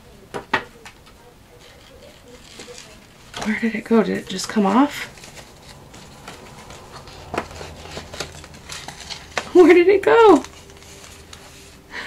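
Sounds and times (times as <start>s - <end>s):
paper rustling: 0.8s - 12.0s.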